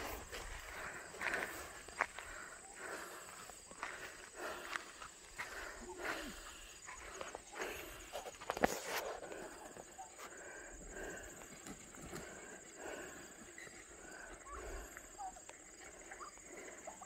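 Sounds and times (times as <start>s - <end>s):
footsteps on gravel: 0.0s - 9.7s
turkey calling: 13.6s - 17.0s.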